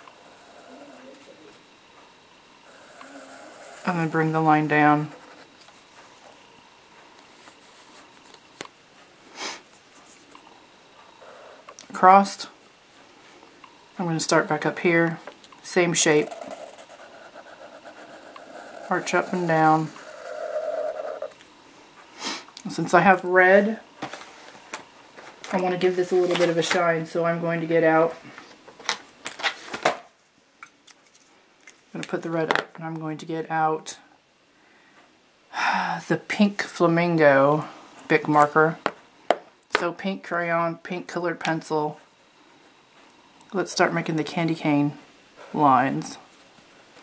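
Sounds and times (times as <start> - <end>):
marker scratching on paper: 16.2 - 21.3.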